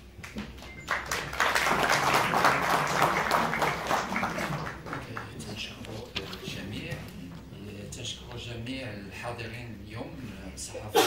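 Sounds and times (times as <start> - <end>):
audience clapping: 0.2 - 6.1.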